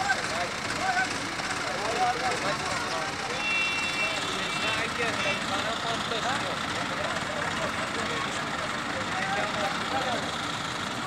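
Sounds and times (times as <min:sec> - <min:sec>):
diesel crane engines running: 0:00.0 - 0:11.0
voices: 0:00.0 - 0:11.0.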